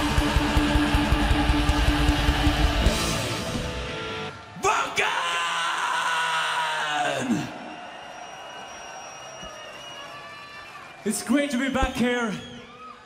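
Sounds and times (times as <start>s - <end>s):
heavy guitar music: 0.0s - 4.5s
loud drawn-out yell: 4.5s - 10.8s.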